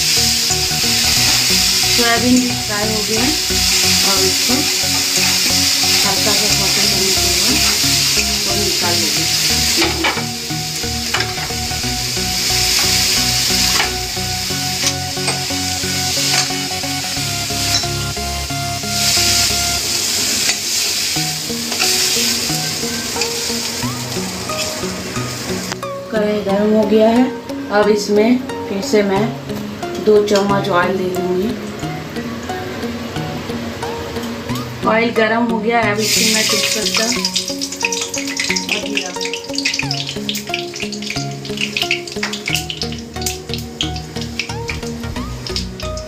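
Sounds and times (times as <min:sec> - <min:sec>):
food sizzling in oil: 0:00.0 - 0:35.1, 0:35.8 - 0:46.0.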